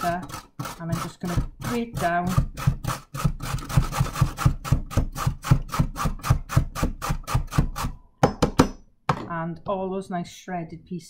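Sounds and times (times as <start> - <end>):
carrot grated on box grater: 0.0 - 8.0
sharp knocks: 8.2 - 9.3.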